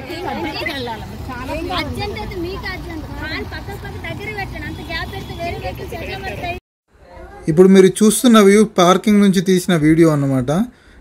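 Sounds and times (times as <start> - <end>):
people talking: 0.0 - 10.7.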